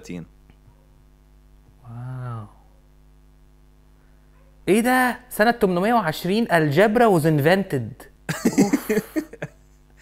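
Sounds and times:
faint steady hum: 0:00.0 - 0:10.0
person's broken vocal sounds: 0:01.8 - 0:02.6.

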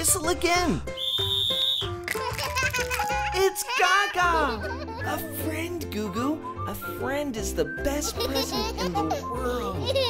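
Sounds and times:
light background music: 0:00.0 - 0:10.0
toy whistle blown: 0:01.0 - 0:02.0.

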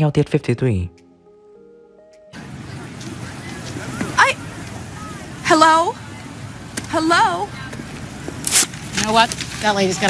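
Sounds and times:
street traffic: 0:01.2 - 0:10.0.

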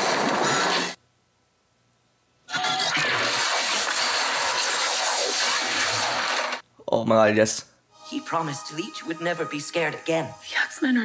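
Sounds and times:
rushing roar of energy blast: 0:03.0 - 0:06.6.

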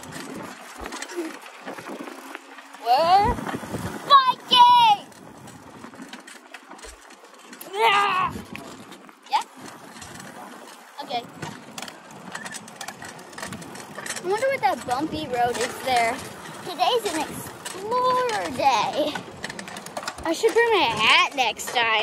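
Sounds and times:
bicycle rolling and rattling: 0:00.0 - 0:22.0
wind: 0:00.0 - 0:22.0
girl calling out: 0:04.1 - 0:05.1, 0:07.7 - 0:08.4.

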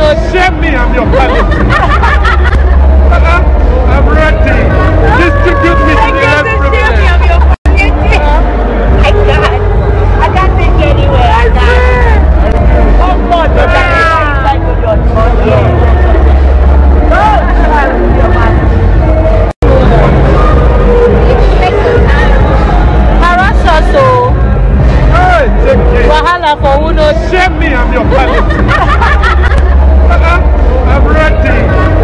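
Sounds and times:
crowd chatter: 0:00.0 - 0:32.0.

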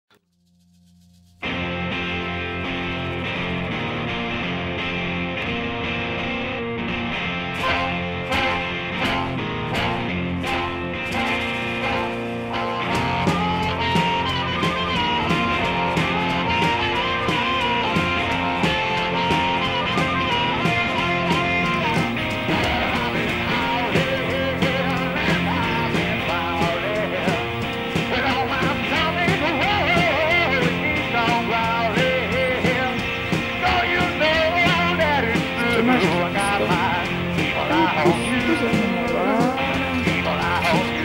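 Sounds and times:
guitar melody: 0:01.4 - 0:41.0
rock music with steady beat: 0:01.4 - 0:41.0.

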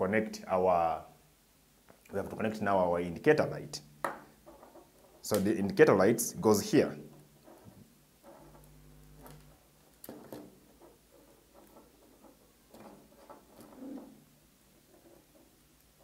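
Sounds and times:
handling clicks and rustles: 0:07.1 - 0:16.0.

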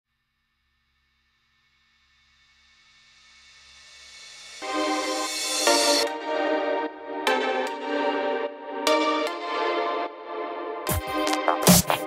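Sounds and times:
electronic dance music: 0:10.9 - 0:12.0.

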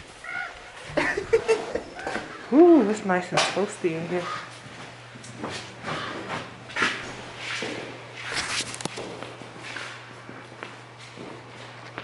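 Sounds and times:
low steady hum: 0:00.0 - 0:12.0
footsteps: 0:04.1 - 0:12.0.

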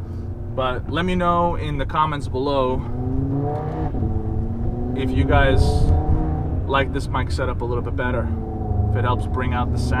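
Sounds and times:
road and wind rumble: 0:00.0 - 0:10.0.

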